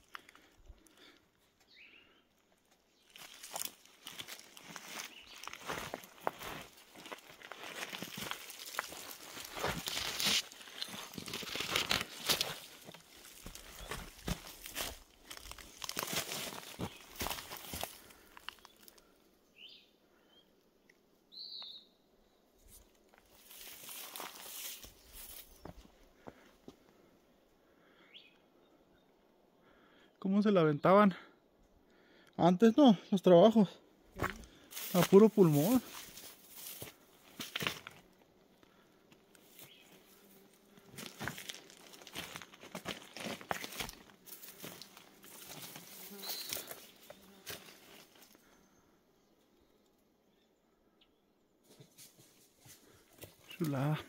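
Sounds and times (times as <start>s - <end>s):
brush rustling: 3.0s - 18.9s, 22.6s - 25.7s, 34.2s - 38.2s, 39.4s - 48.3s
footsteps crunching on gravel: 3.1s - 18.9s, 23.1s - 26.4s, 34.2s - 48.3s.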